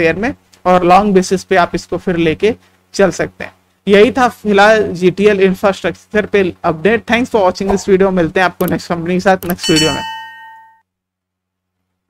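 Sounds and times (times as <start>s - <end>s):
bell-like metallic ding: 9.6s - 10.8s.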